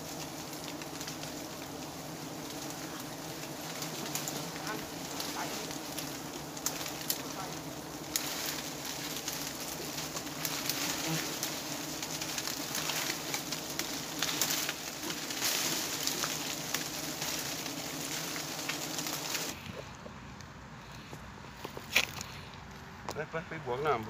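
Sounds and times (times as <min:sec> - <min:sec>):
bees buzzing: 0:00.0 - 0:20.0
crackling hiss: 0:00.0 - 0:23.4.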